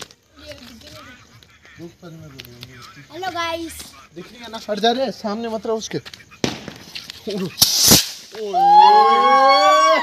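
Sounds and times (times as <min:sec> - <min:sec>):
firework crack: 0:00.0 - 0:04.8, 0:05.7 - 0:09.4
firework hissing burst: 0:06.4 - 0:08.6.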